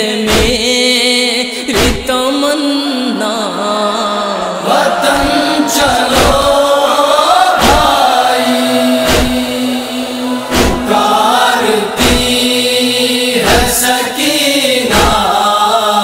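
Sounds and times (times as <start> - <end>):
deep thump: 6.1 - 6.5, 7.6 - 8.0, 9.0 - 9.5, 10.5 - 11.0, 12.0 - 12.4
hummed drone: 7.7 - 13.4.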